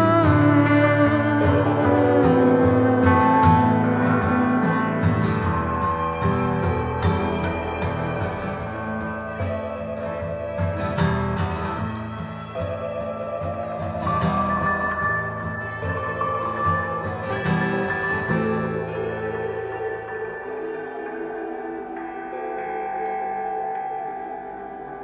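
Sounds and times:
rock guitars: 0.0s - 25.0s.

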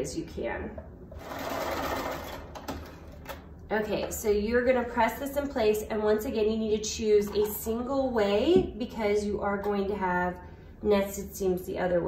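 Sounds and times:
sewing machine stitching: 1.2s - 3.0s.

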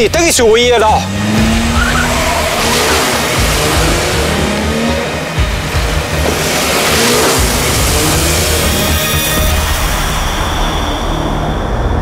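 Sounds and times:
music: 0.0s - 12.0s
car engine revving: 0.6s - 10.7s.

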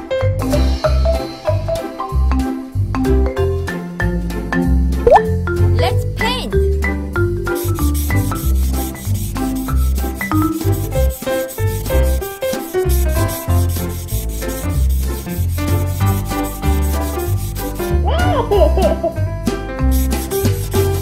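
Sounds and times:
felt-tip marker scratching paper: 7.6s - 18.0s, 19.9s - 21.0s.

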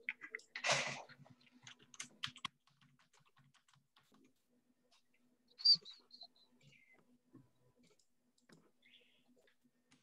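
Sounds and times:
faint keyboard typing and clicking: 0.0s - 5.1s, 6.6s - 10.0s.

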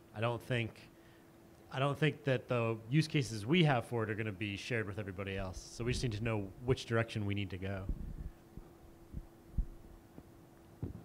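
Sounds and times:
steady electrical hum: 0.0s - 11.0s
microphone handling thumps: 5.8s - 6.3s, 7.8s - 10.0s, 10.8s - 11.0s.

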